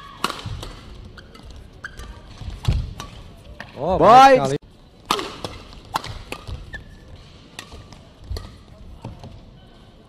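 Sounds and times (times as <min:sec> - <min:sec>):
badminton rackets hitting shuttlecock: 0:00.0 - 0:03.8, 0:05.0 - 0:08.7.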